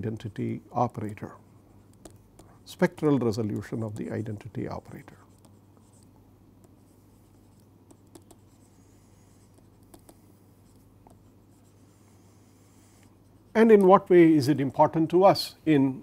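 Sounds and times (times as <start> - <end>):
low steady hum: 0.0 - 16.0
stylus tapping on tablet screen: 7.5 - 8.6, 9.5 - 10.2.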